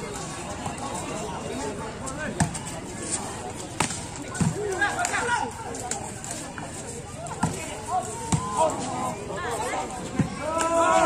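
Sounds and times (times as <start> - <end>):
spectators chatting: 0.0 - 11.0.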